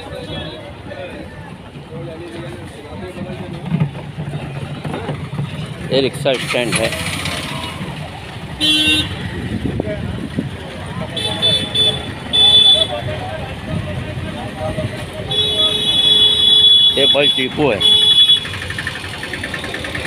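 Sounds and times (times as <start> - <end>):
street traffic noise: 0.0 - 20.0
voices: 0.0 - 20.0
vehicle horns honking: 0.1 - 0.8, 8.6 - 9.3, 11.1 - 13.1, 15.3 - 18.7.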